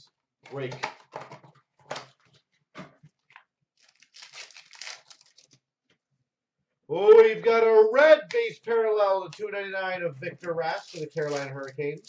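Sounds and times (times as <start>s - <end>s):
wrappers crinkling and tearing: 3.8s - 5.6s, 10.8s - 12.0s.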